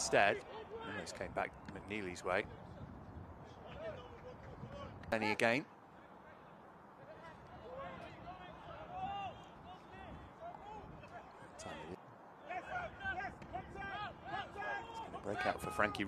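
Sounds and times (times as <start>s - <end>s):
distant players shouting: 0.0s - 1.2s, 6.1s - 16.0s
open-air ambience: 0.0s - 16.0s.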